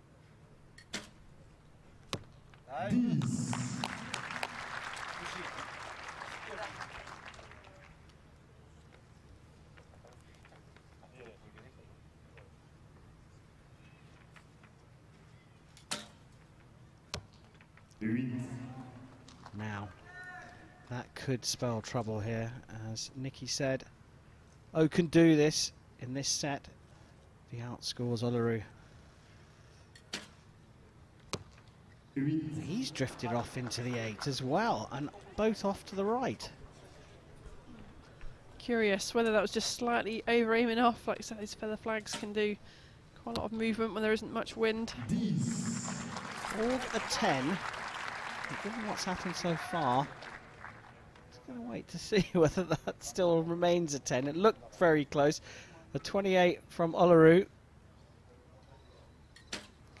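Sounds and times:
brief sharp sound: 2.9 - 4.7, 45.0 - 46.6
faint low hum: 17.9 - 29.9, 31.9 - 39.4.

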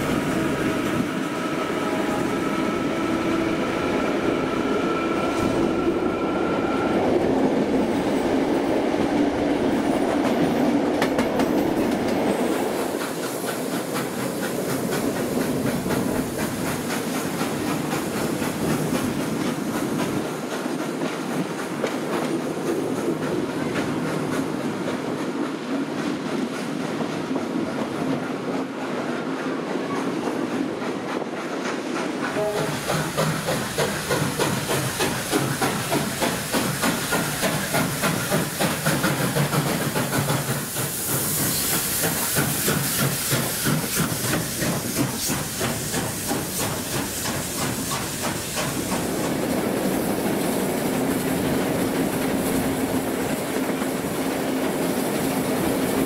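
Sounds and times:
steam hissing: 0.0 - 10.5, 11.4 - 27.0, 31.2 - 56.0
train wheels clattering on rails: 0.0 - 56.0.

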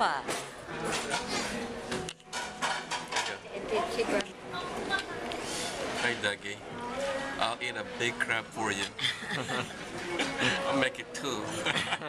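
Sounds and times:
background chatter: 0.0 - 12.0
dishes and cutlery clinking: 0.3 - 3.4, 5.6 - 6.4.

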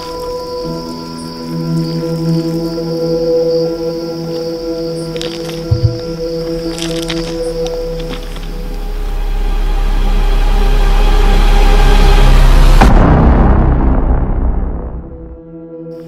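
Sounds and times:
low thumps: 5.6 - 6.6
deep rumble: 5.6 - 15.6.

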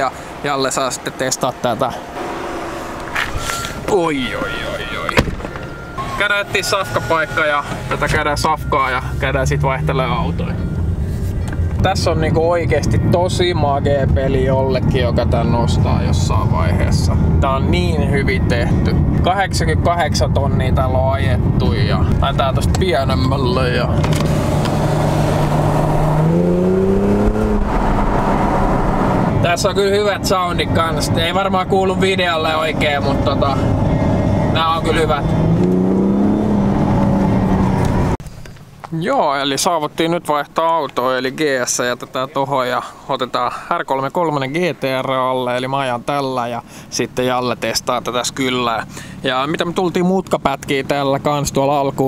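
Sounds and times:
car idling with low hum: 0.0 - 26.7, 42.0 - 52.0
thin steady high tone: 1.1 - 13.4.

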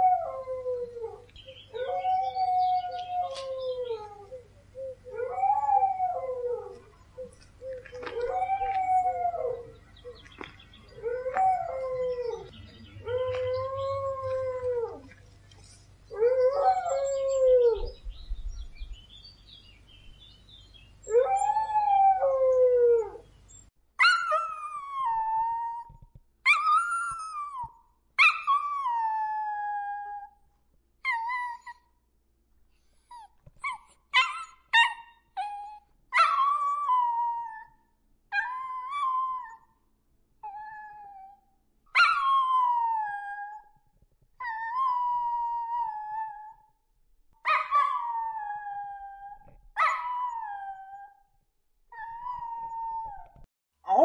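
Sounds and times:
dogs howling: 0.0 - 15.2, 16.1 - 18.0.

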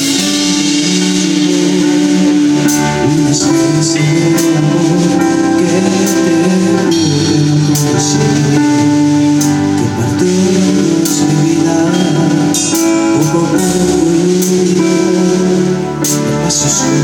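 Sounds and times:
band playing pop ballad: 0.0 - 17.0.

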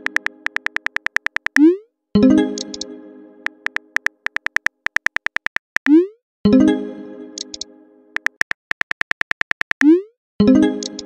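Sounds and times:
phone keyboard tap clicks: 0.0 - 1.6, 2.6 - 2.8, 3.5 - 5.9, 8.2 - 9.8.

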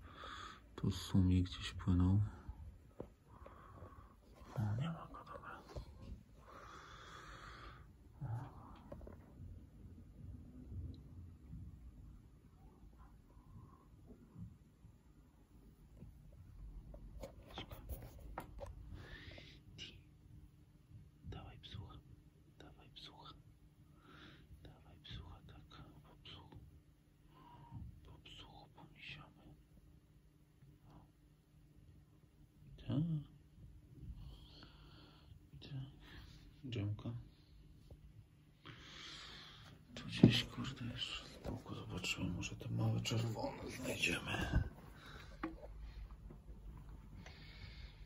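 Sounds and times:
person breathing: 0.0 - 0.8, 3.2 - 4.5, 5.7 - 9.2, 18.8 - 19.6, 34.0 - 36.5, 38.6 - 40.0, 44.4 - 48.0
low murmured hum: 0.0 - 48.0
person whispering: 3.6 - 6.3, 8.1 - 9.2, 19.4 - 20.1, 21.2 - 23.4, 24.6 - 26.7, 27.7 - 29.8, 35.5 - 37.4, 39.9 - 46.0.

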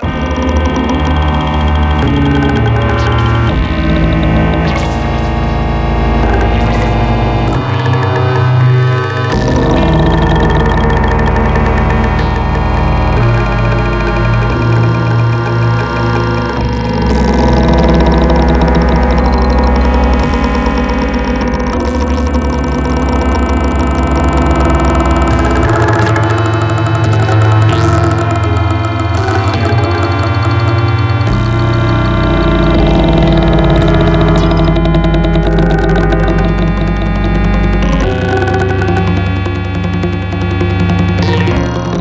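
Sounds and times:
buzzing low drone: 0.0 - 42.0
rapid repeating high pulses: 0.0 - 42.0
sustained synthesizer tones: 0.0 - 42.0.

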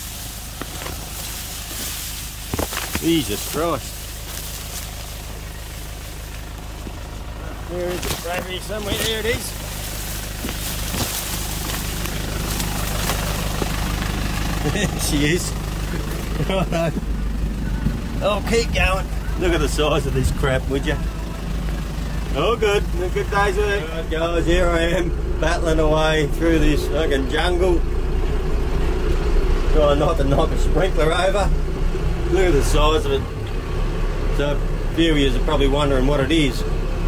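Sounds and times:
rustle of tall leaves: 0.0 - 16.6
distant tractor engine hum: 0.0 - 37.0
man's voice: 2.9 - 4.0, 7.5 - 9.6, 14.6 - 17.0, 18.2 - 21.2.

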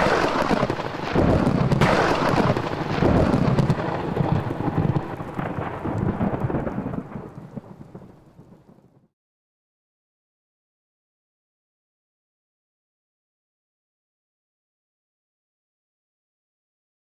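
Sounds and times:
thunder crack and rumble: 0.0 - 9.1.

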